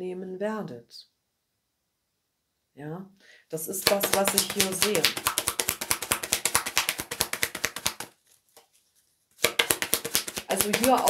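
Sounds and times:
cards being shuffled: 3.7s - 11.0s.

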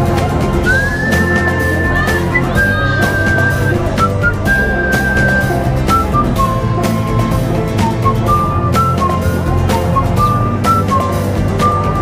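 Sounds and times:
steady drum beat: 0.0s - 12.0s
high melodic figure: 0.6s - 8.8s.

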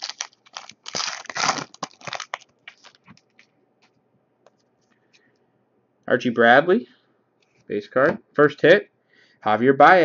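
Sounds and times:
foil wrapper tearing and crinkling: 0.0s - 3.2s.

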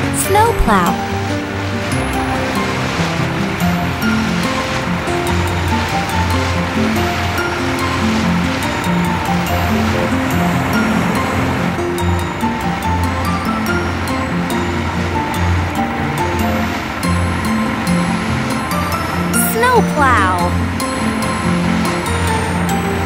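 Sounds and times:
background music: 0.0s - 23.0s
snowplow blade pushing snow: 0.0s - 23.0s.

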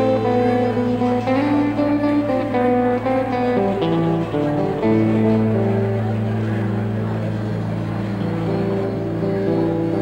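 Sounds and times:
electric guitar held notes: 0.0s - 10.0s.

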